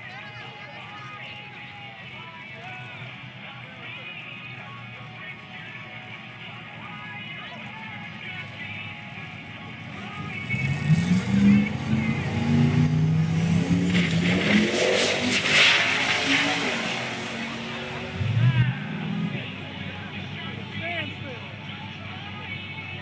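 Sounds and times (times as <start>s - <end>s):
drag racing cars accelerating: 4.8s - 23.0s
loud rush of noise: 9.6s - 21.6s.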